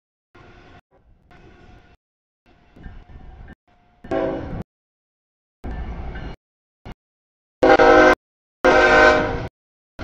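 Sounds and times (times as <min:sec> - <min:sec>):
locomotive air horn: 0:04.1 - 0:04.6, 0:07.6 - 0:09.5.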